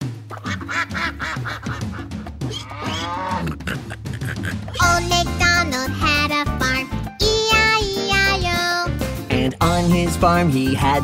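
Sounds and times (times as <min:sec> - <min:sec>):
cartoon duck quacks: 0:00.3 - 0:05.0
rising and falling animal call: 0:00.4 - 0:04.8
bright children's music: 0:04.7 - 0:11.0.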